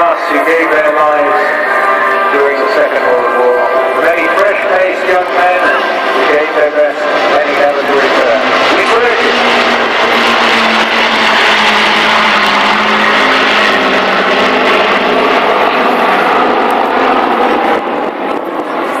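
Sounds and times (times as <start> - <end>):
propeller aircraft engines droning overhead: 0.0 - 19.0.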